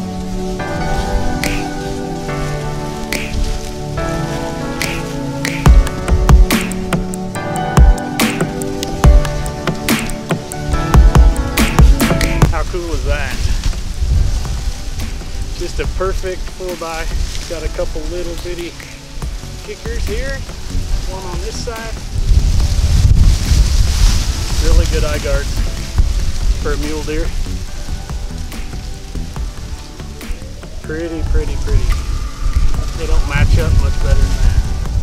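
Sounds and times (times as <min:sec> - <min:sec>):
wind buffeting microphone: 0:00.0 - 0:35.0
music with drum beat: 0:01.4 - 0:01.8, 0:03.1 - 0:03.7, 0:04.8 - 0:17.0, 0:18.5 - 0:22.1, 0:24.6 - 0:34.2
person speaking: 0:11.4 - 0:13.5.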